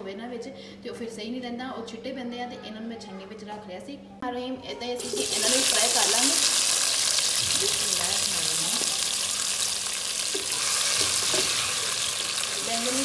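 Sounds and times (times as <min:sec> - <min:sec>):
eggplant sizzling in hot oil: 0:05.0 - 0:13.0.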